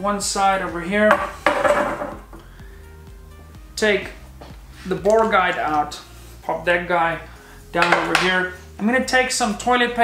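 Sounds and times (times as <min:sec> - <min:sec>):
metal rod clattering and scraping: 0:01.1 - 0:02.2.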